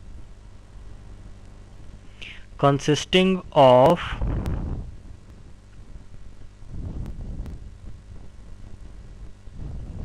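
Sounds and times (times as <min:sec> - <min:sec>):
faint low rumble: 0:00.0 - 0:10.0.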